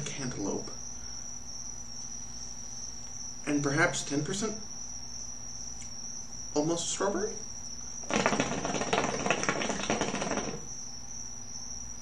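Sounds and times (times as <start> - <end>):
hookah water bubbling: 8.0 - 10.7.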